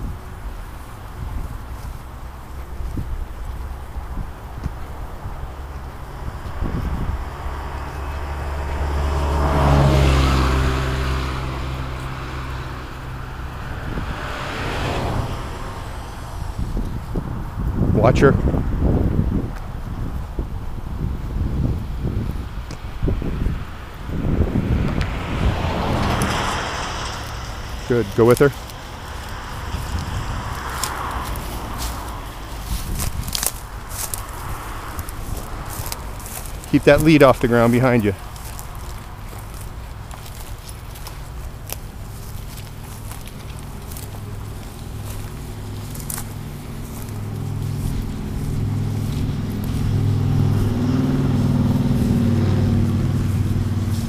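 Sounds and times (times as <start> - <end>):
footsteps through dry brush: 0.0 - 17.9, 24.1 - 54.0
cars passing on road: 0.0 - 54.0
steady low rumble: 0.0 - 54.0
twigs crackling and snapping: 24.9 - 54.0.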